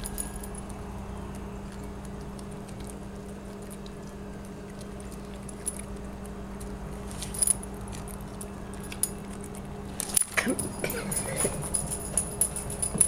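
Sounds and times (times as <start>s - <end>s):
dog collar tags jingling: 0.0s - 0.8s, 5.2s - 6.0s, 7.1s - 13.0s
steady low hum: 0.0s - 13.0s.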